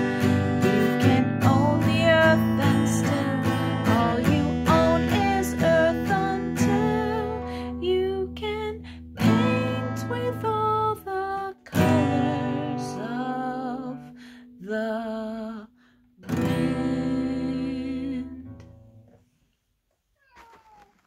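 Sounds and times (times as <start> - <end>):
acoustic guitar strumming: 0.0 - 7.7, 11.7 - 13.4
person singing: 0.0 - 15.7, 16.3 - 18.6
faint handling sounds: 19.0 - 21.0.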